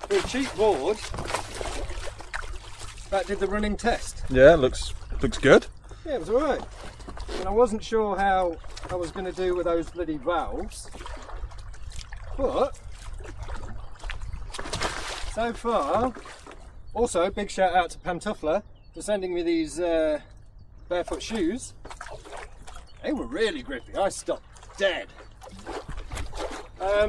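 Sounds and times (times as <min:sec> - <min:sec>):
splashy paddle strokes: 0:00.0 - 0:03.5, 0:24.6 - 0:27.0
water lapping and splashing: 0:00.0 - 0:16.9, 0:21.0 - 0:27.0
wind rumble on microphone: 0:00.0 - 0:19.0, 0:25.2 - 0:27.0.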